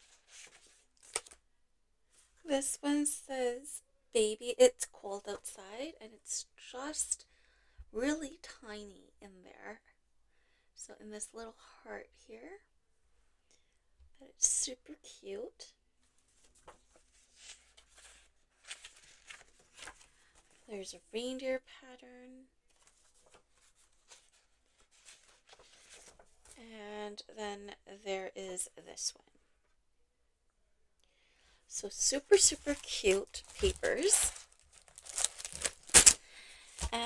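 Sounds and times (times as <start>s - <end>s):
paper sheets rustling: 0.0s - 1.4s, 16.2s - 20.7s, 22.7s - 26.6s, 32.2s - 37.0s.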